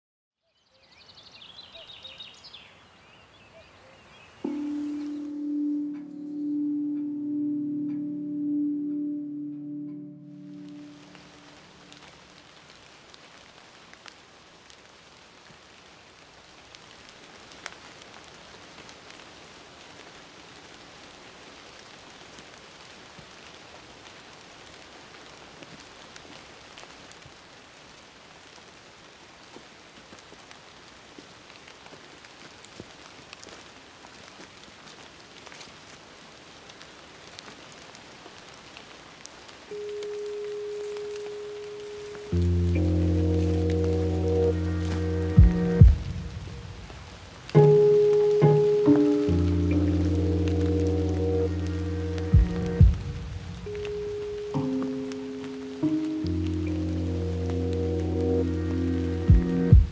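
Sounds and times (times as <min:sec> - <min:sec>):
held musical note: 0:04.4 - 0:12.1, 0:39.7 - 0:46.9, 0:47.5 - 0:59.9
water drops on leaves: 0:10.5 - 0:59.9
music with deep bass: 0:42.4 - 0:46.7, 0:47.6 - 0:55.1, 0:56.0 - 0:59.9.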